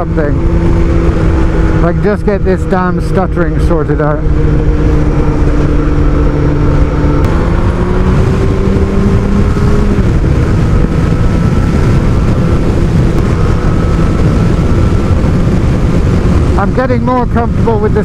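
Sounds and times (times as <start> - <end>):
motorcycle engine revving: 0.0 - 18.0
wind and road noise: 0.0 - 18.0.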